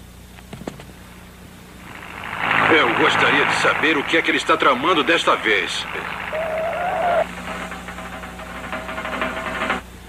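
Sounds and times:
cartoon jeep engine sputtering: 1.7s - 9.8s.

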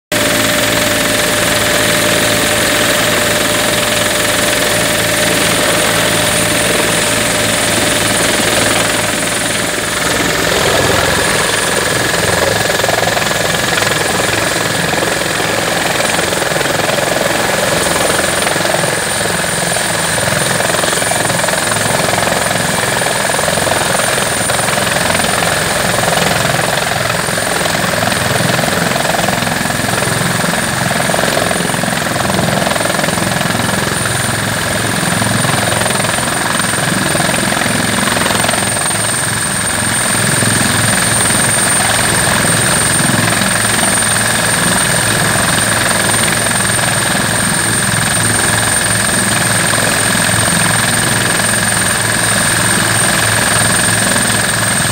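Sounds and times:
helicopter rotor and engine noise: 0.0s - 54.9s
high turbine whine: 0.2s - 54.9s.

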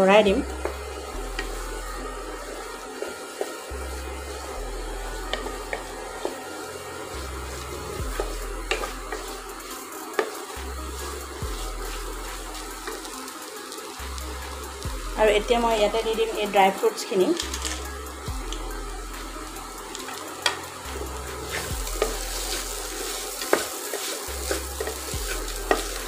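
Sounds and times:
background music with bass: 0.0s - 2.9s, 3.7s - 9.9s, 10.5s - 16.6s, 17.4s - 26.0s
soft sizzling: 0.0s - 26.0s
spatula scraping pot: 7.4s - 13.1s, 19.9s - 26.0s
spatula tapping pot: 8.1s - 9.4s, 23.1s - 26.0s.

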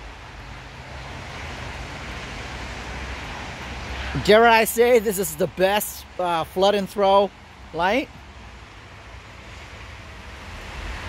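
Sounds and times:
wind rumble on microphone: 8.2s - 11.0s.

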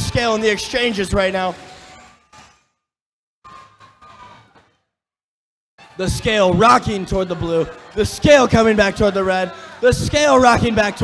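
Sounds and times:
faint arena background noise: 0.0s - 2.6s, 5.8s - 11.0s.

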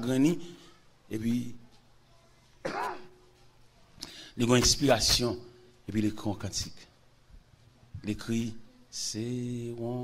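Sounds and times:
man clearing throat: 2.6s - 3.1s.

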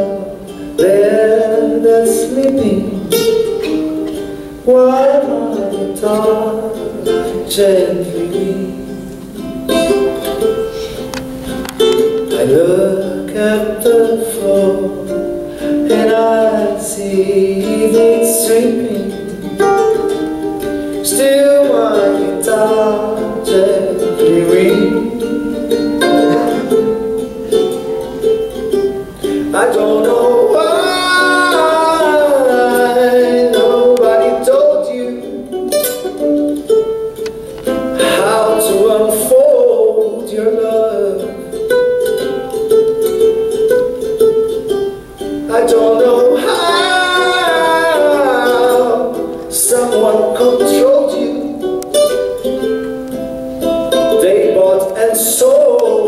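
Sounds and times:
man singing: 0.0s - 4.0s, 4.6s - 36.2s, 37.7s - 42.5s, 45.4s - 52.9s, 53.6s - 56.0s
plucked acoustic string instrument: 0.0s - 56.0s.

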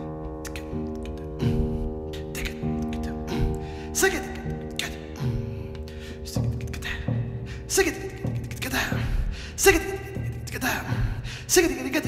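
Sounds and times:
breathy vocal percussion: 0.0s - 12.0s.

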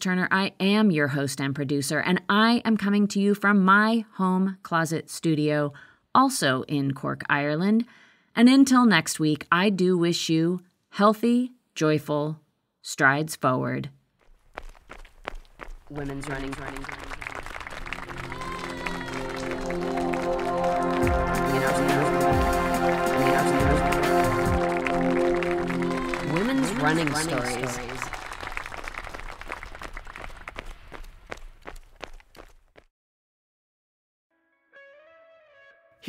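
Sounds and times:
running footsteps: 14.2s - 21.2s, 24.5s - 32.9s.

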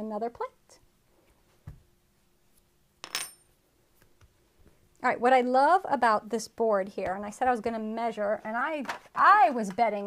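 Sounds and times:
metal object clinking on wood: 3.0s - 3.5s.

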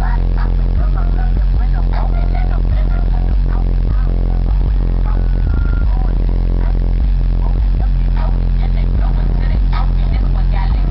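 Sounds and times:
bass-heavy music from car stereo: 0.0s - 10.9s.

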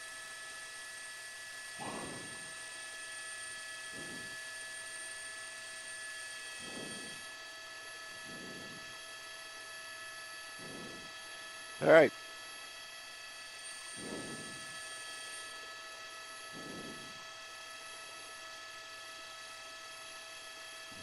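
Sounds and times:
high whining tones: 1.8s - 2.8s, 3.8s - 7.4s, 8.2s - 9.0s, 10.6s - 11.1s, 13.8s - 15.2s
electrical hum and hiss: 1.8s - 7.4s, 8.0s - 9.0s, 10.4s - 11.2s, 13.6s - 15.4s, 16.4s - 17.3s.

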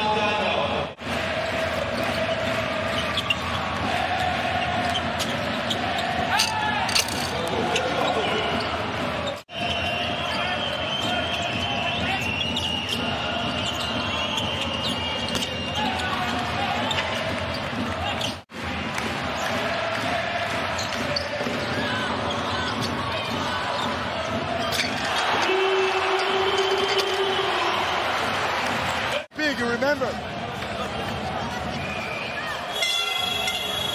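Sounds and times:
crowd noise and voices: 0.0s - 33.9s.

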